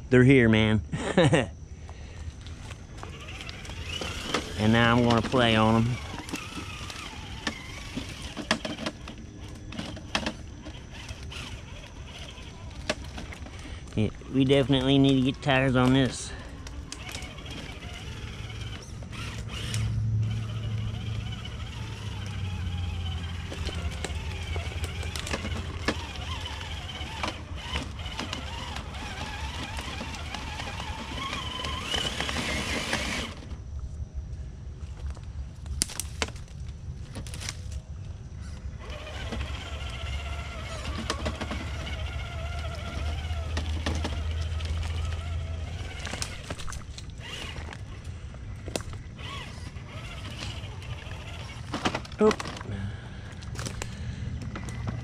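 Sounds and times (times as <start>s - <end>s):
electric motor and gears whining: 0.0s - 55.0s
tracks clicking on rock: 23.0s - 33.6s.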